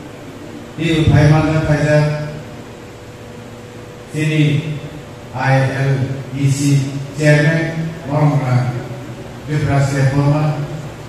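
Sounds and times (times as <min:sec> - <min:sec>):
background hiss: 0:00.0 - 0:11.0
faint steady hum: 0:00.0 - 0:11.0
man speaking through a microphone: 0:00.8 - 0:02.5, 0:04.1 - 0:11.0.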